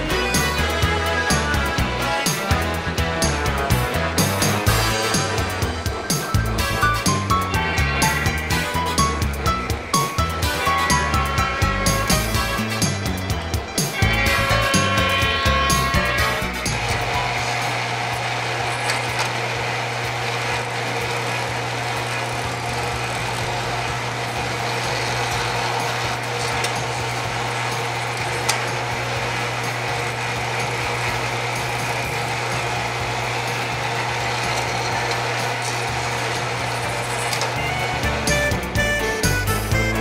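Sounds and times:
toy sawmill vibrator buzzing: 0.0 - 40.0.

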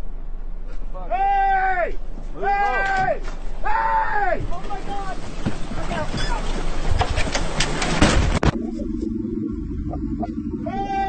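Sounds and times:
men shouting: 1.0 - 5.2, 10.6 - 11.0
clatter of knocks: 4.4 - 8.6.

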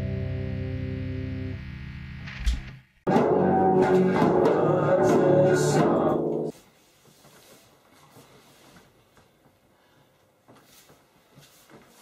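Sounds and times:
garage rock held chord: 0.0 - 6.5.

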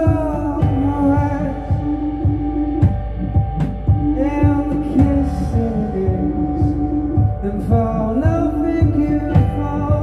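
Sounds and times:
drum kit beat: 0.0 - 10.0
sustained keyboard chords: 0.0 - 10.0.

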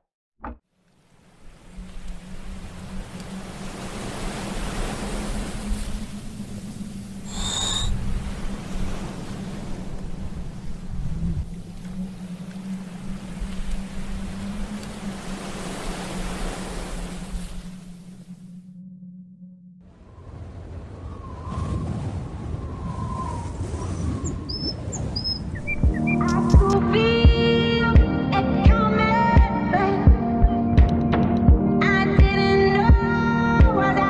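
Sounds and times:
ocean surf rushing: 1.0 - 18.4.

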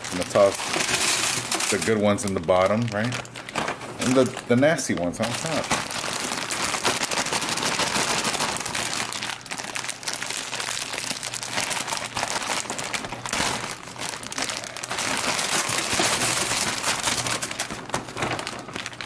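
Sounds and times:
candy bag crinkling: 0.0 - 19.0.

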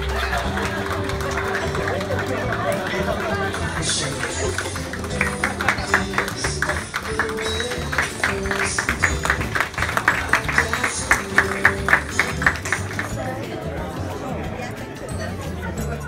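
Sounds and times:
crowd clapping along: 0.0 - 13.5
music playing: 0.0 - 16.0.

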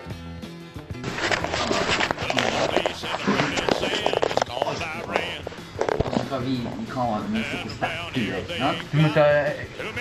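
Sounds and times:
indistinct voices: 1.5 - 10.0.

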